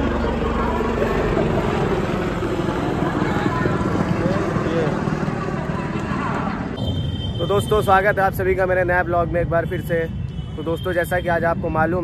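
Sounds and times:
crowd chattering: 0.0s - 7.0s
helicopter rotor overhead: 0.0s - 7.4s.

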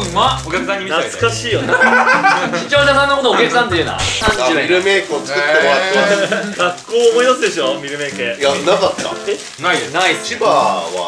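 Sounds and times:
men talking and exclaiming: 0.0s - 11.0s.

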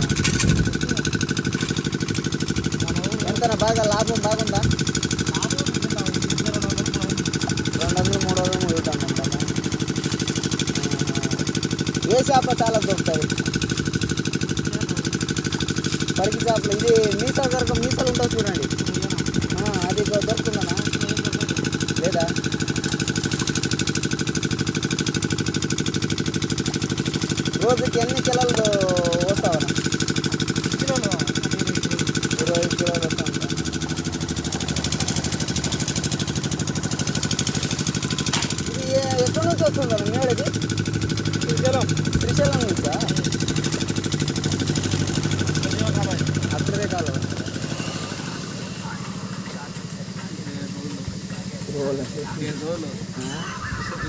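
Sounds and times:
small engine idling: 0.0s - 54.0s.

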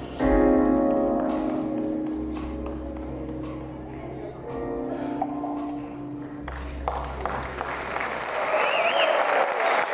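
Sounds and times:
audience applauding: 6.5s - 9.9s
wavering whistle: 8.5s - 9.2s.

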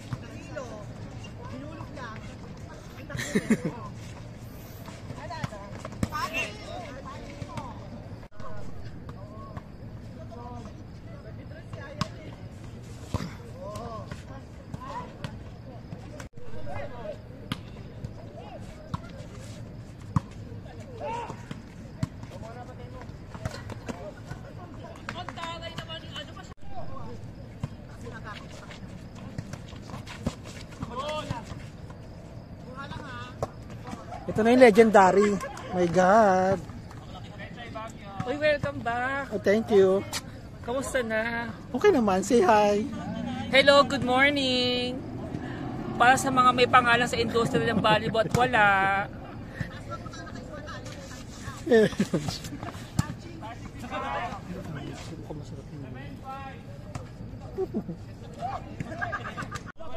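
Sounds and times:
players calling out: 41.6s - 50.5s.

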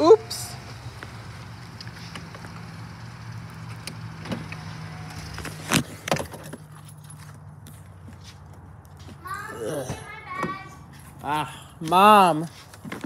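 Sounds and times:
van engine idling: 0.0s - 13.0s.

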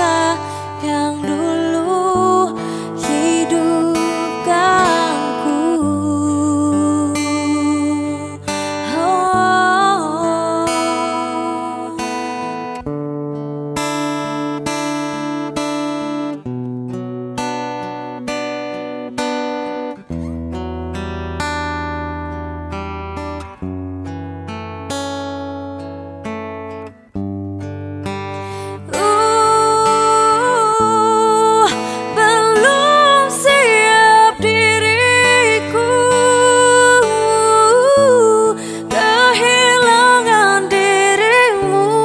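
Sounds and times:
woman singing: 0.0s - 12.8s, 28.5s - 42.0s
acoustic guitar picking: 0.0s - 42.0s.

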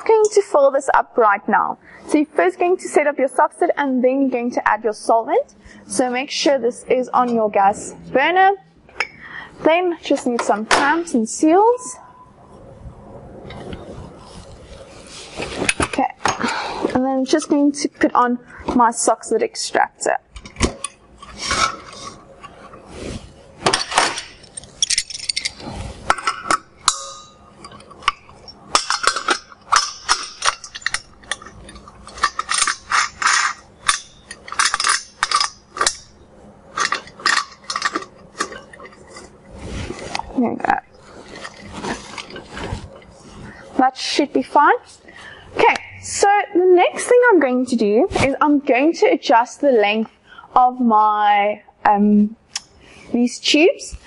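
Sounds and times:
clinks of metal and glass: 23.7s - 36.2s.

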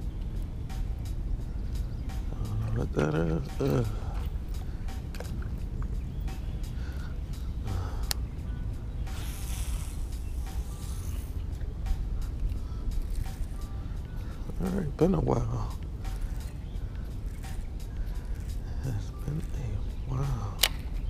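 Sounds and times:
fishing reel cranking: 9.1s - 14.7s, 15.6s - 21.0s
reel clicking: 9.1s - 14.7s, 15.7s - 21.0s.

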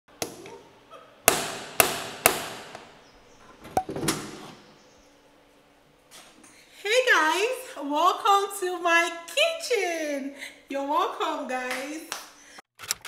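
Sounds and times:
sharp click and rattle: 12.8s - 13.0s.

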